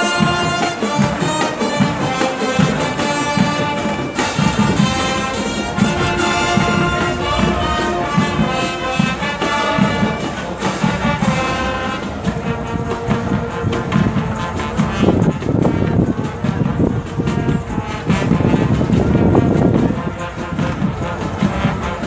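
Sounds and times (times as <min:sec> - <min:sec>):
brass marching band playing: 0:00.0 - 0:22.0.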